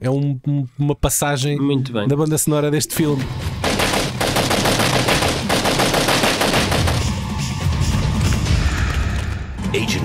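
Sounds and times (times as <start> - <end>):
film background music: 0.0 - 10.0
rapid automatic gunfire: 3.6 - 7.3.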